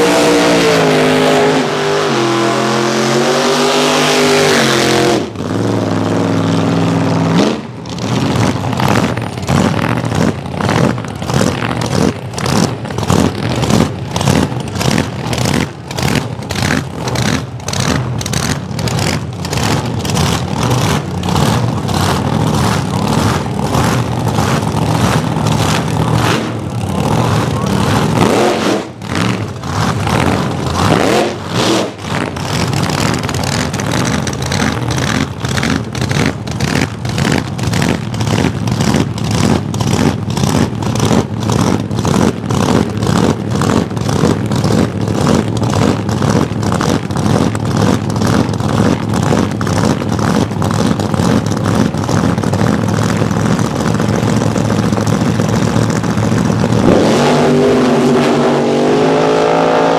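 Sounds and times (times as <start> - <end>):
engine revving high: 0.0 - 15.6, 19.6 - 36.2, 56.7 - 59.9.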